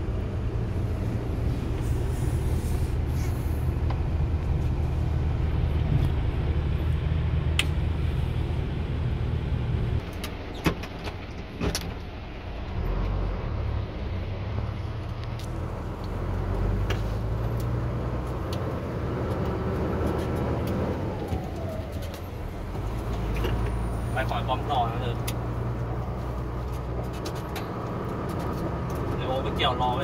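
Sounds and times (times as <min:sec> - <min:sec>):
truck engine running at low revs: 0:00.0 - 0:30.0.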